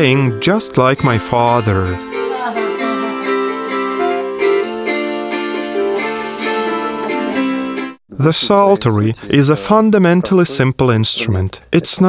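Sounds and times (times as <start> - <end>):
psaltery plucked folk tune: 0.0 - 11.2.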